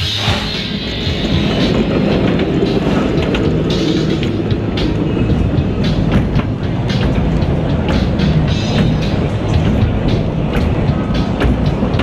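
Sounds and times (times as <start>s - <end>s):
roller coaster train rattling on track: 0.0s - 12.0s
lift hill clicks: 1.2s - 12.0s.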